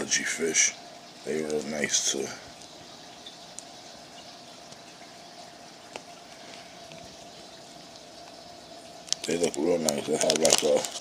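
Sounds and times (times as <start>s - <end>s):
faint background hum and hiss: 0.0s - 11.0s.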